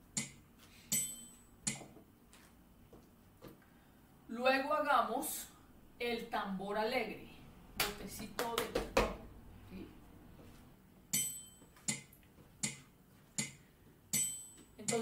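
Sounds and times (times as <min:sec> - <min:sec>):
woman's voice: 0:04.3 - 0:08.9, 0:14.8 - 0:15.0.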